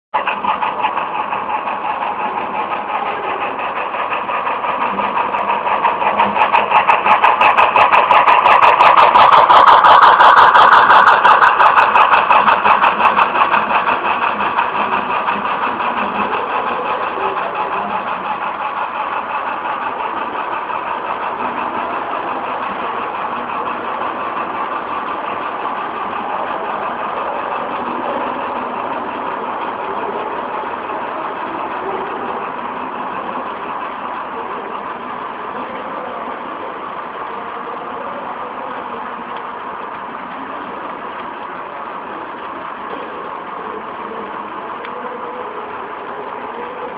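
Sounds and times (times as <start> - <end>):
model freight cars rolling: 0.2 - 46.9
model train steam chuffing: 0.2 - 46.9.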